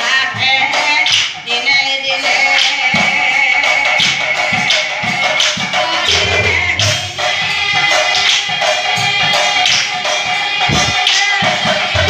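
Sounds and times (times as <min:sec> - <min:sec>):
drums beaten in steady beat: 0:00.0 - 0:12.0
group singing: 0:00.0 - 0:12.0.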